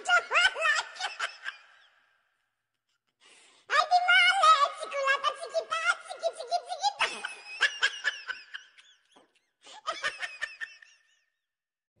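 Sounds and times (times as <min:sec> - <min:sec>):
children laughing: 0:00.0 - 0:01.8, 0:06.6 - 0:11.1.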